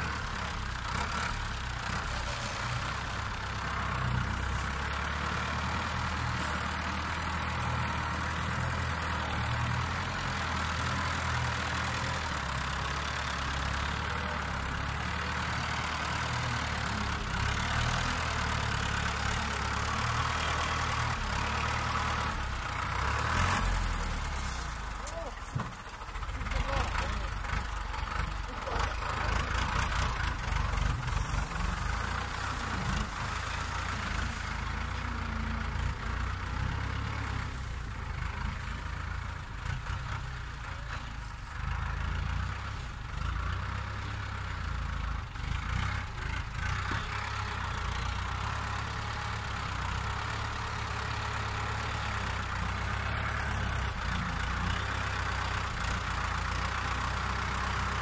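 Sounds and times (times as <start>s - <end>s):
grab loader working cane: 0.0s - 45.0s, 45.6s - 58.0s
tractor engine running: 0.0s - 58.0s.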